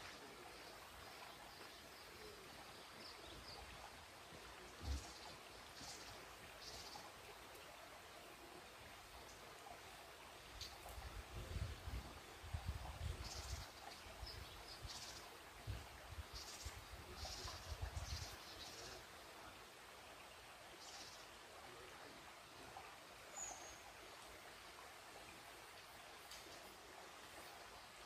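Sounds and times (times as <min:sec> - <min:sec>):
faint bird chirps: 0:16.3 - 0:19.1.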